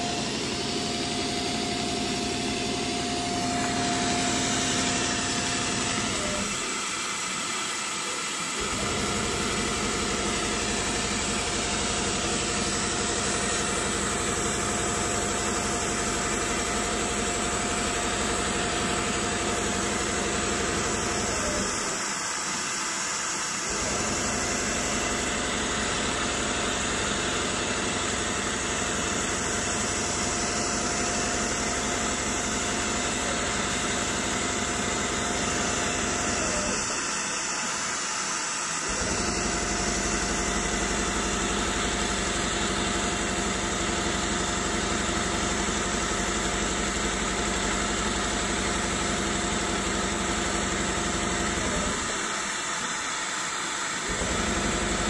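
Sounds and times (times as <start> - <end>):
steady machine hum: 0.0 - 52.9.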